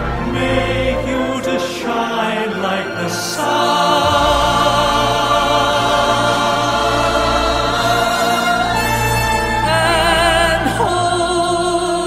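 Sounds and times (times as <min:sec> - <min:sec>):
choir singing held chords: 0:00.0 - 0:12.0
low instrumental accompaniment: 0:00.0 - 0:12.0.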